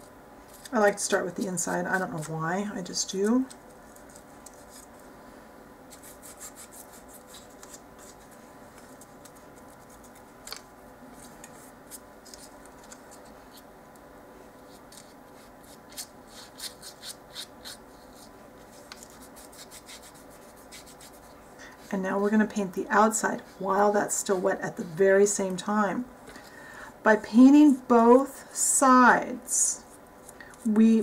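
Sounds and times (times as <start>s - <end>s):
faint room hum: 0.0s - 31.0s.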